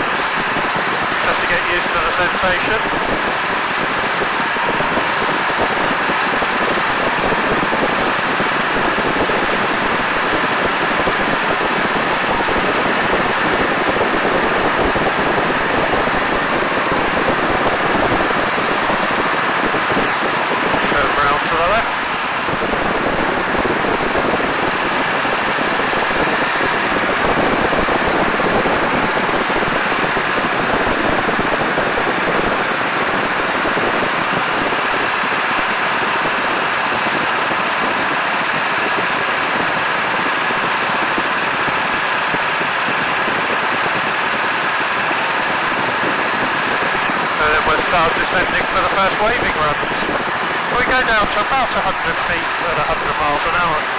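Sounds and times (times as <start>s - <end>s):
biplane engine in flight: 0.0s - 53.9s
wind buffeting microphone: 0.0s - 53.9s.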